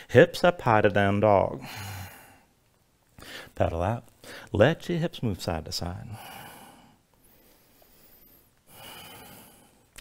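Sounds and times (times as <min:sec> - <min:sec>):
man breathing: 0:01.6 - 0:02.5, 0:03.2 - 0:03.6, 0:04.2 - 0:04.5, 0:06.1 - 0:10.0.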